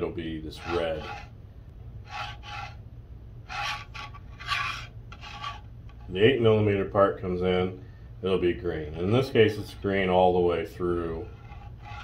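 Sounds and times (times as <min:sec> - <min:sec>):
plastic scraping across textured board: 0:02.1 - 0:02.8, 0:03.5 - 0:06.2, 0:11.3 - 0:12.0.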